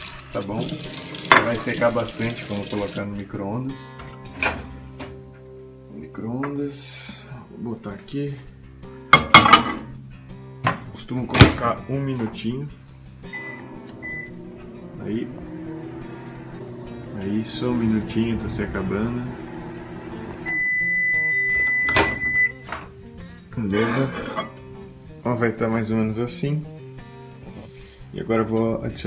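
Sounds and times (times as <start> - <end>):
background music: 0.0 - 29.0
microwave beep: 13.3 - 14.4, 20.4 - 22.7.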